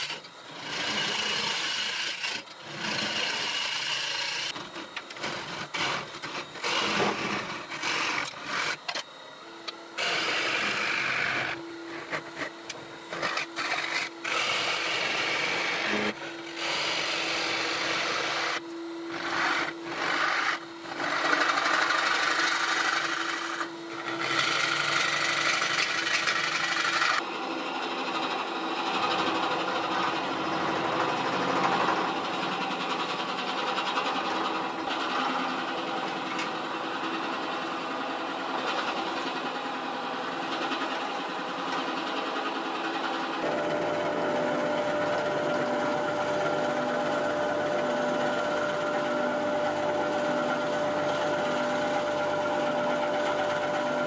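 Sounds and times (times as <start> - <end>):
drill bit boring into wood: 0.0 - 9.0, 10.0 - 27.2
gouge cutting wood: 0.0 - 9.0, 10.0 - 27.2
wood lathe spinning: 0.0 - 54.0.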